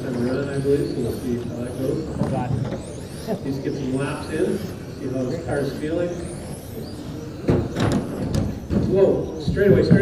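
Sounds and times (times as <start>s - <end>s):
rc car motors whining: 0.0s - 10.0s.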